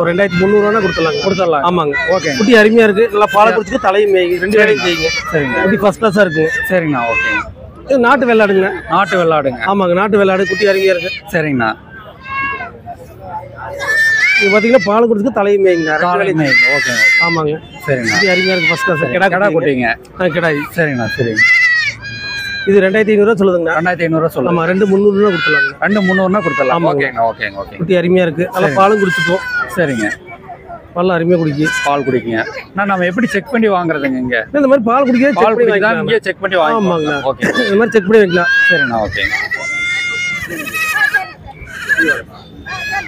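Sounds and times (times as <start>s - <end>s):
man talking: 0.0s - 11.8s, 14.4s - 21.4s, 22.7s - 30.2s, 31.0s - 39.4s.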